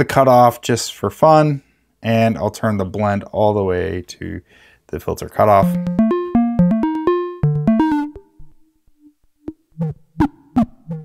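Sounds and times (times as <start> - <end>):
buzzy synthesizer sequence: 5.6 - 11.0.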